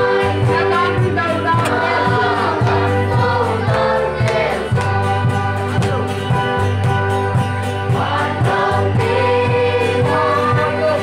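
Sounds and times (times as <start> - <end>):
group singing gospel song: 0.0 - 11.0
guitar accompaniment: 0.0 - 11.0
hand clapping: 3.7 - 7.3.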